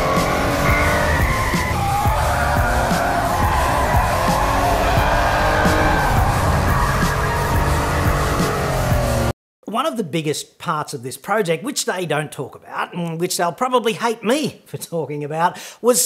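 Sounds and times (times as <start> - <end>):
tyres squealing: 0.0 - 8.5
van engine revving high: 0.0 - 9.3.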